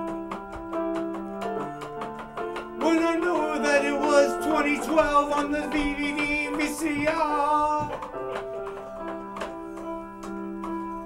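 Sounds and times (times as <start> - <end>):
electronic keyboard chords with beat: 0.0 - 11.0
man singing: 2.8 - 8.2.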